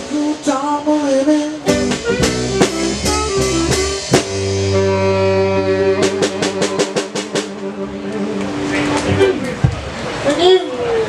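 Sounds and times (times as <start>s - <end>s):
drum and cymbal hits: 0.0s - 9.8s
fast drum roll: 1.7s - 7.9s.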